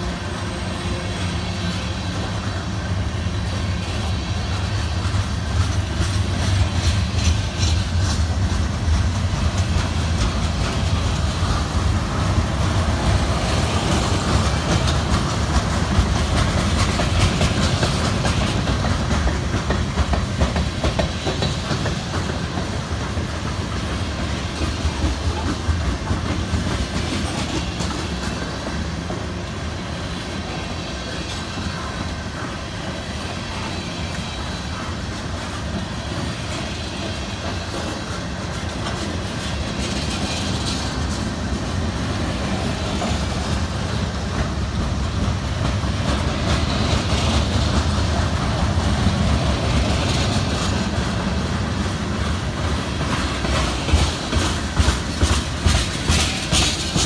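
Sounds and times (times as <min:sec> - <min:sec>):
freight train rumble: 0:00.0 - 0:57.0
wheels clicking over rail joints: 0:01.7 - 0:57.0.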